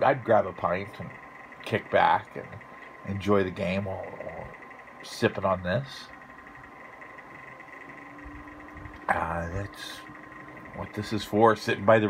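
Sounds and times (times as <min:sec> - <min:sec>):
high-pitched hum: 0:00.0 - 0:12.0.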